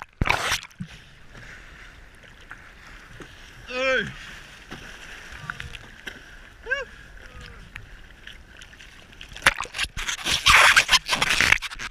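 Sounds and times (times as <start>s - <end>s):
small waves lapping and sloshing: 0.0s - 11.9s.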